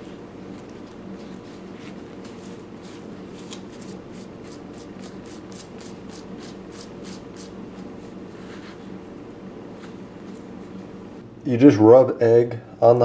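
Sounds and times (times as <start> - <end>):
paper towel wiping pelt: 0.8 - 8.9.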